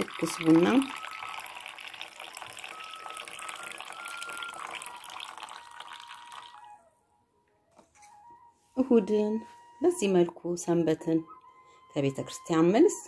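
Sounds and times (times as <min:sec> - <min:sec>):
coffee trickling into ceramic cup: 0:00.0 - 0:06.8.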